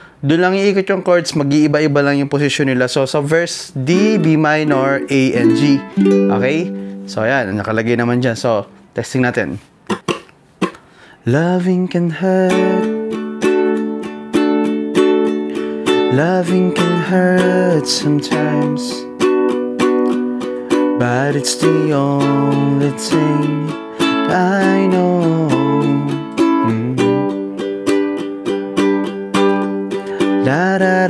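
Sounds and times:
ukulele strumming: 3.8s - 9.0s, 9.9s - 10.8s, 12.0s - 31.0s.

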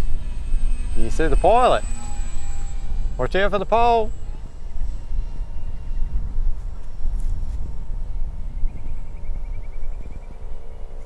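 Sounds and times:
distant model plane motor whine: 0.0s - 11.0s
wind buffeting microphone: 0.0s - 11.0s.

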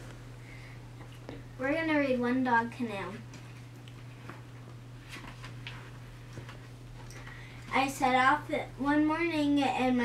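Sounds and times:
book pages rustling: 4.1s - 6.8s.

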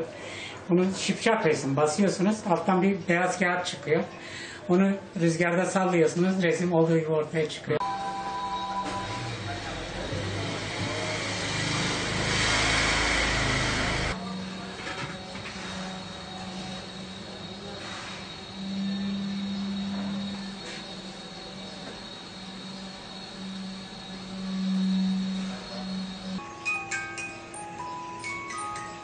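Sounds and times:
motor hum: 7.9s - 26.5s
loud rushing noise with rumble: 9.3s - 14.2s.

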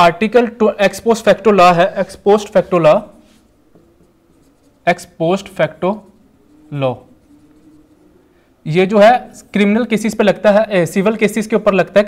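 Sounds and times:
person speaking: 0.0s - 12.0s
marker writing on whiteboard: 0.9s - 8.2s.

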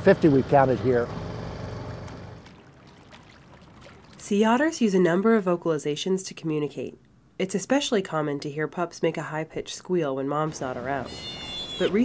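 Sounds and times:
outboard motor idling: 0.0s - 4.2s.

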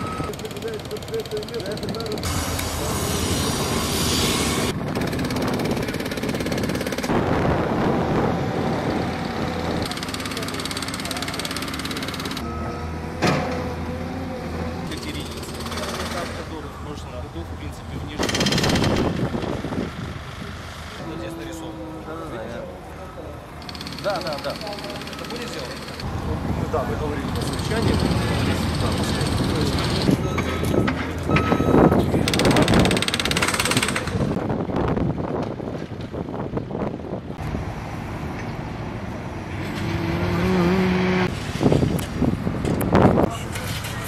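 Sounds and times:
traffic: 0.0s - 44.0s
jackhammer rattling: 0.2s - 2.4s, 4.9s - 7.1s, 9.8s - 12.4s, 14.9s - 16.5s, 18.2s - 19.7s, 23.6s - 26.1s, 27.2s - 30.2s, 32.2s - 34.4s
fast mechanical rattle: 18.2s - 19.6s, 32.3s - 34.4s
crowd voices: 20.3s - 34.4s.

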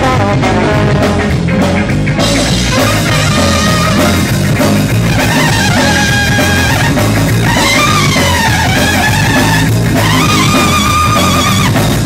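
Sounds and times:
trumpet lines: 0.0s - 1.3s, 2.4s - 12.0s
bass guitar: 0.0s - 12.0s
drum kit: 0.0s - 12.0s
electric guitar: 0.0s - 12.0s.

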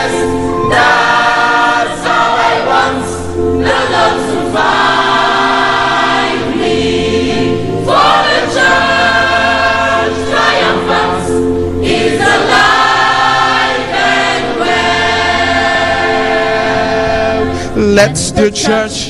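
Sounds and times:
youth choir singing gospel: 0.0s - 19.0s.

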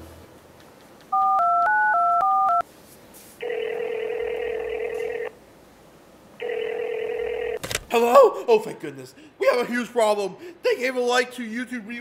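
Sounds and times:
phone ringback tone: 1.2s - 2.6s, 3.4s - 5.3s, 6.4s - 7.6s
touch-tone phone dialing: 1.2s - 2.6s, 3.4s - 5.3s, 6.4s - 7.6s.

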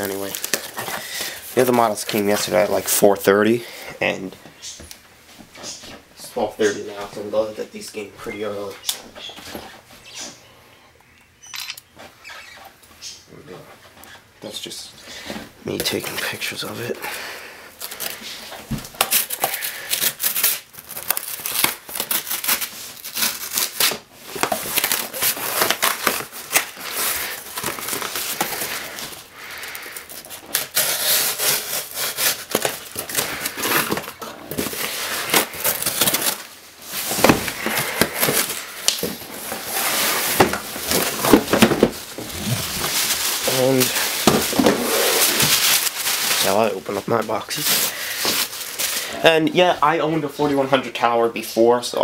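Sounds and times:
plastic and paper rustling: 0.0s - 4.2s, 15.2s - 52.0s
cardboard flaps scraping: 30.7s - 46.6s.

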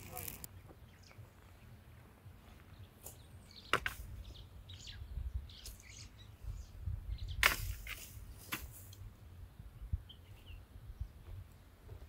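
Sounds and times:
birds chirping faintly: 0.0s - 12.0s
wind rumble on microphone: 4.0s - 12.0s.

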